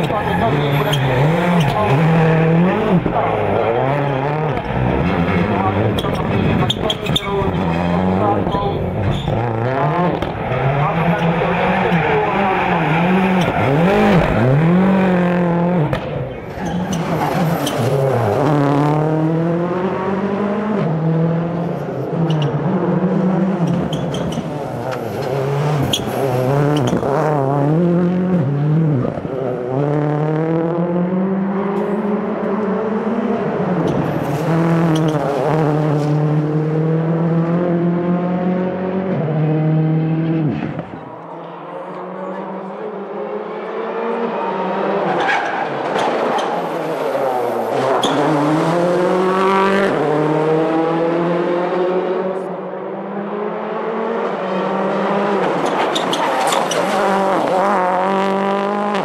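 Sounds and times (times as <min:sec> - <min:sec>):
tyre squeal: 0:00.0 - 0:02.1, 0:08.4 - 0:09.6, 0:16.5 - 0:18.2, 0:23.6 - 0:27.1, 0:47.8 - 0:48.4, 0:55.6 - 0:57.3
rally car engine revving: 0:00.0 - 0:59.0.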